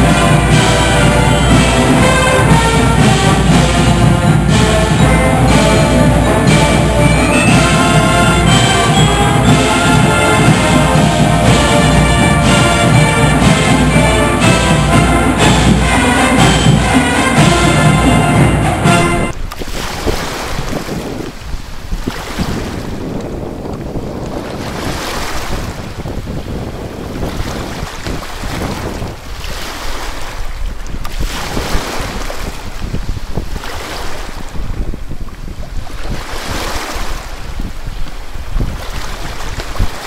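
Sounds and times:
choppy water surging: 0.0 - 40.0
wind buffeting microphone: 0.0 - 40.0.

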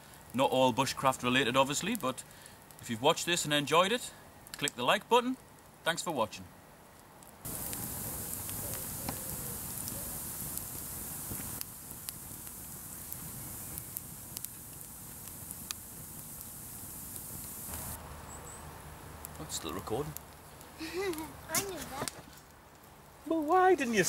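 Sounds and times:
fire crackling and popping: 0.0 - 24.0
log fire burning: 0.0 - 24.0.

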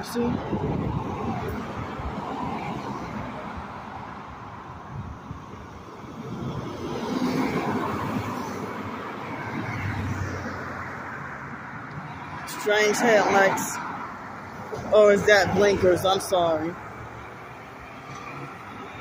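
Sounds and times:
cars driving past: 0.0 - 19.0.

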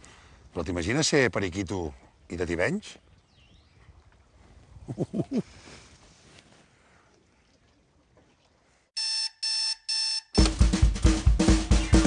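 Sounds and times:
alarm clock beeping: 9.0 - 10.4.

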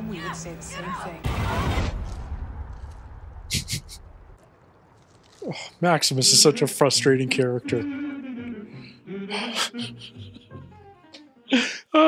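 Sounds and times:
man laughing: 3.5 - 4.1, 7.1 - 8.7, 9.3 - 10.6.

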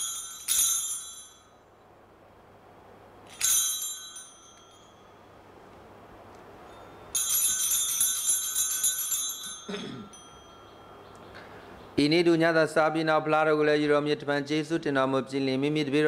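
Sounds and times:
hand bells ringing: 0.0 - 1.7, 3.3 - 5.3, 6.6 - 11.1.

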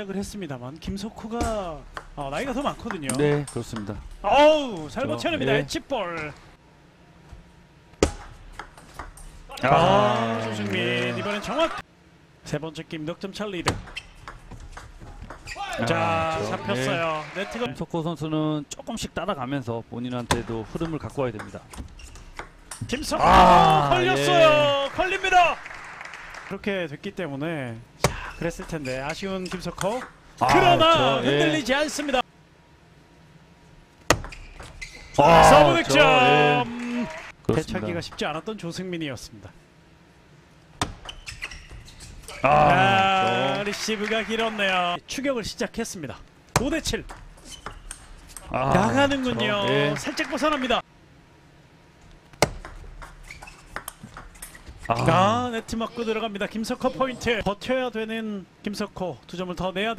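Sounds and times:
ball hitting racket: 8.0 - 9.2, 34.0 - 34.4, 52.4 - 53.2
table tennis ball bouncing: 8.0 - 9.3, 13.7 - 15.4, 20.3 - 22.9.

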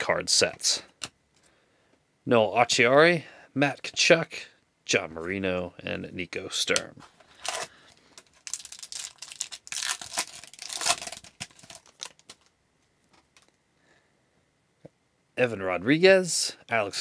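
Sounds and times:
foil wrapper tearing and crinkling: 7.4 - 12.5.

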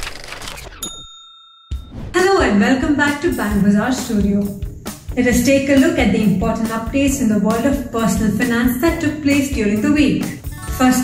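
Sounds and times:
bright bell-like ding: 0.8 - 2.2
musical swoosh: 1.8 - 2.4.

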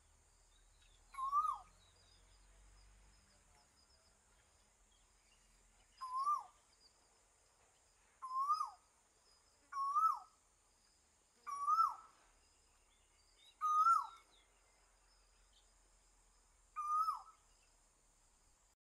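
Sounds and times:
bird calling: 0.8 - 2.0, 5.9 - 6.6, 8.2 - 8.8, 9.7 - 10.3, 11.5 - 12.2, 13.4 - 14.5, 16.8 - 17.4.

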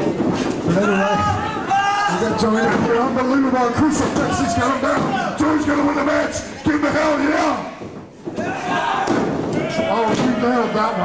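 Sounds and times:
men shouting: 8.4 - 11.0.

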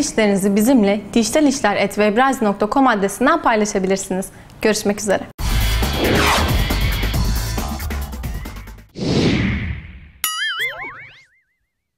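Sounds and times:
rising zip: 5.4 - 7.3
swoosh: 5.4 - 7.9
sharp hit: 5.8 - 7.0.

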